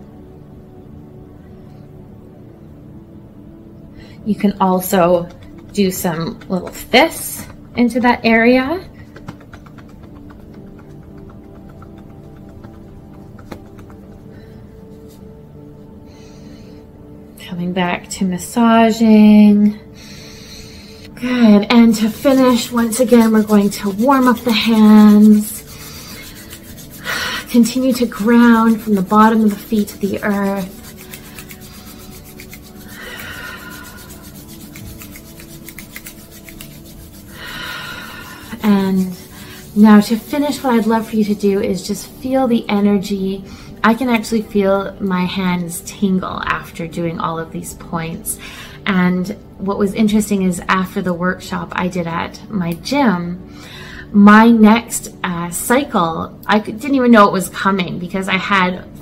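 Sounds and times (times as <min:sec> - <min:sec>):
faint background music: 0:00.0 - 0:59.0
palms rubbing together: 0:04.4 - 0:17.1, 0:20.0 - 0:44.7
light quick tapping: 0:09.0 - 0:14.2.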